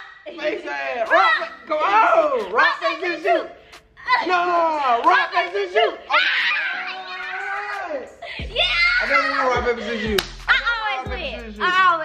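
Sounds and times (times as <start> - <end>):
hand clap: 5.0 - 5.4, 10.1 - 10.5.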